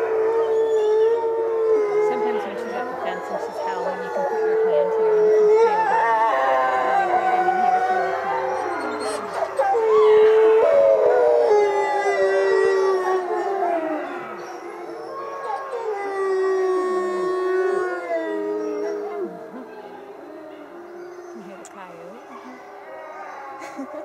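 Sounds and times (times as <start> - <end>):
wolves howling: 0.0 - 24.0.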